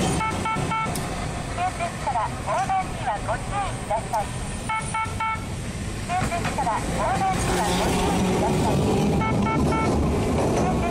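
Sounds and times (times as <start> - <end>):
streetcar rumbling on rails: 0.0 - 10.9
short high beeps: 0.2 - 0.9, 4.7 - 5.5, 9.2 - 10.0.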